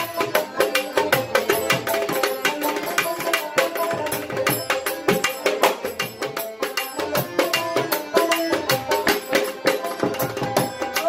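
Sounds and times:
dhol drum beat: 0.0s - 11.0s
harmonium melody: 0.0s - 11.0s.

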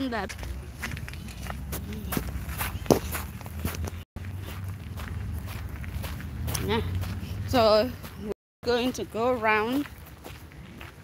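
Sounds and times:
footsteps on gravel: 0.2s - 11.0s.

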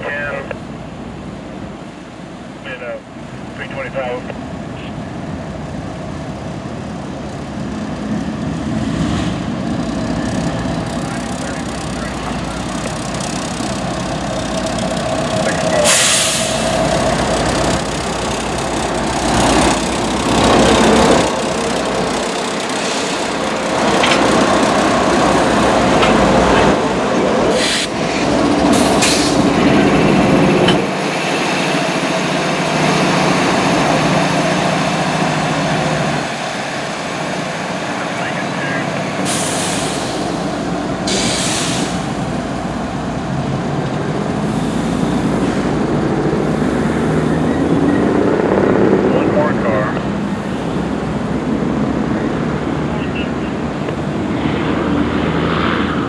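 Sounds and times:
diesel locomotives rumbling: 0.0s - 56.0s
air brake hisses: 15.8s - 16.8s, 27.6s - 27.9s, 39.3s - 40.2s, 41.1s - 42.0s.

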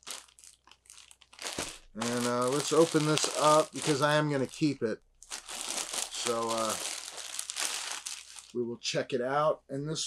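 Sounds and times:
plastic bag crinkling: 0.0s - 8.6s.

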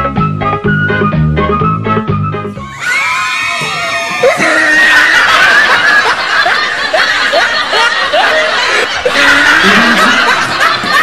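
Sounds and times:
music: 0.0s - 4.3s
high-pitched screams: 2.5s - 5.8s
loud laughter: 3.8s - 11.0s.

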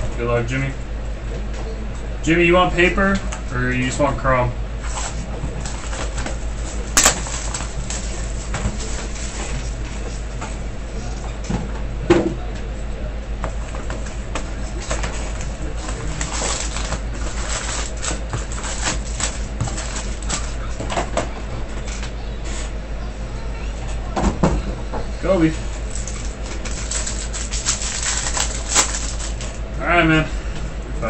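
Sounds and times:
low electrical hum: 0.0s - 31.0s
foil packs crinkling and rustling: 4.8s - 10.0s, 13.8s - 22.2s, 25.2s - 30.2s.

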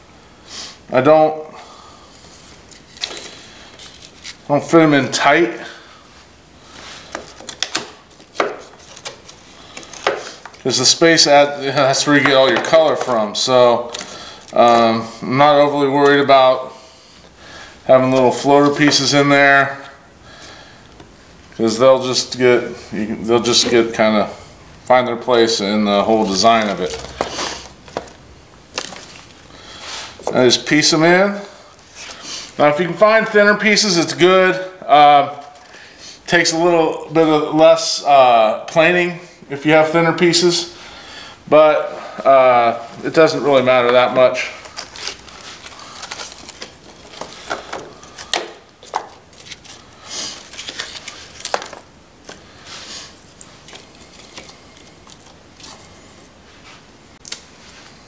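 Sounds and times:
bark pieces clicking and rustling: 53.4s - 55.8s.

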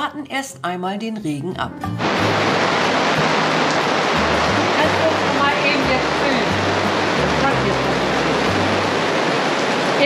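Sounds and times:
low background music: 0.0s - 10.0s
rain falling: 2.0s - 10.0s.

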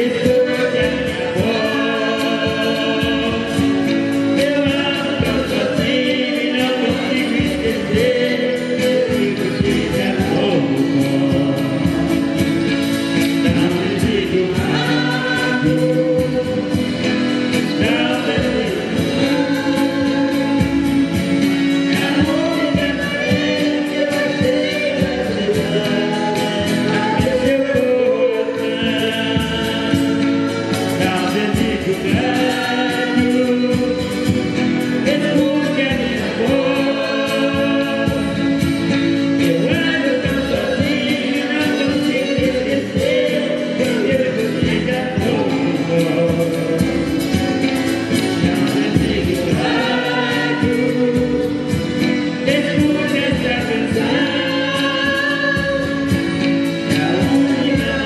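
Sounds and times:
accordion: 0.0s - 58.0s
acoustic guitars: 0.0s - 58.0s
woman singing: 52.5s - 58.0s
woman singing into microphone: 53.7s - 56.3s.

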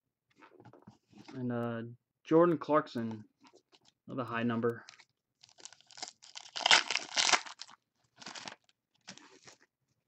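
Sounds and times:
card packaging crinkling and tearing: 4.9s - 9.6s.

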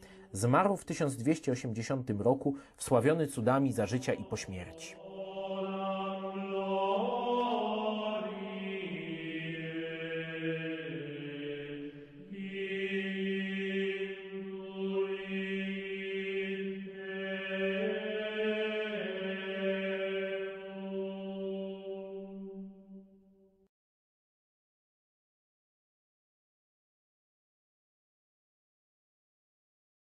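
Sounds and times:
slow low vocal chant: 3.9s - 22.8s.

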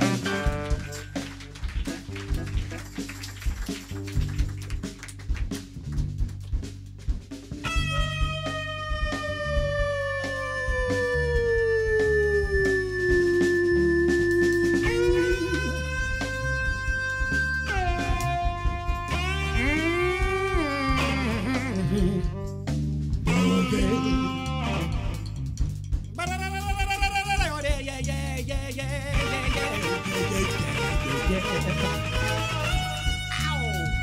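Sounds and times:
bass and drum groove: 0.0s - 34.0s
long held bending lead notes: 7.7s - 22.6s.

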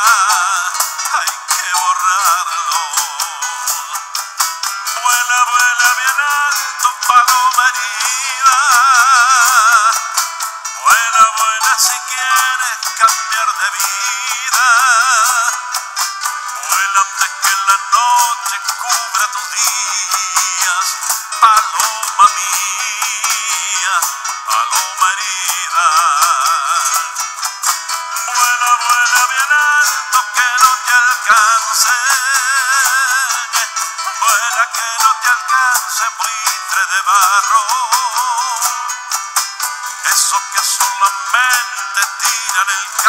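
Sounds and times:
strummed nylon-string guitar: 0.0s - 43.0s
vibrato lead melody: 0.0s - 43.0s.

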